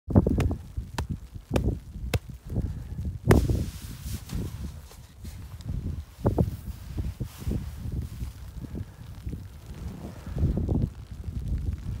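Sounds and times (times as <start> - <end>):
snow blocks thudding and scraping: 0.3 - 2.3, 3.3 - 6.7.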